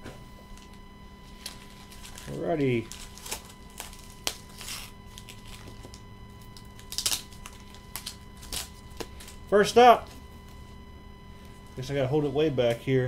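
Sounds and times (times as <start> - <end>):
paper rustling: 1.3 - 5.9.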